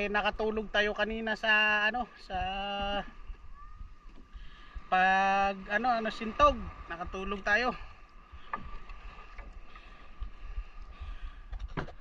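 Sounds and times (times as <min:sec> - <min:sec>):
water lapping around canoe: 0:00.0 - 0:12.0.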